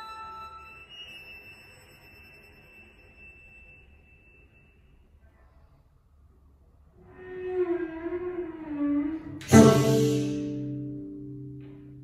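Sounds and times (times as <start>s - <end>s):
cello high soft note: 7.0s - 11.8s.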